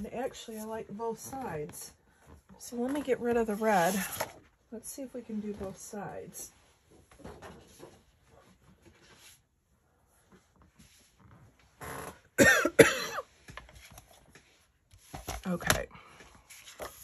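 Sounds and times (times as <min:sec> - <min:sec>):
woman coughing: 0:12.4 - 0:13.3.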